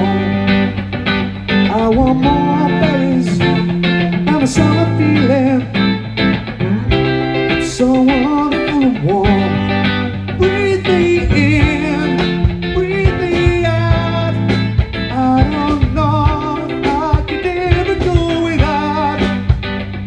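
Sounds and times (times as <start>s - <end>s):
bass guitar: 0.0s - 20.0s
drums: 0.0s - 20.0s
electric guitars: 0.0s - 20.0s
gliding guitar lead line: 0.0s - 20.0s.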